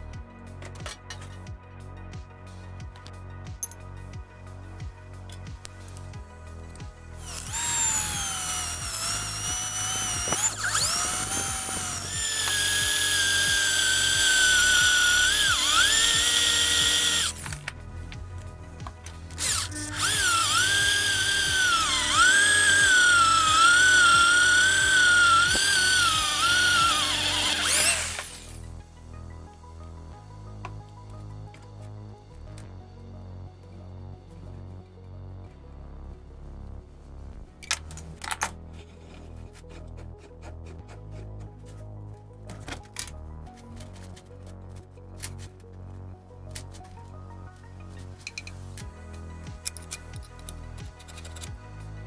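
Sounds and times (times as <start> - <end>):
electric drill boring into steel: 7.2 - 17.6, 19.3 - 28.6.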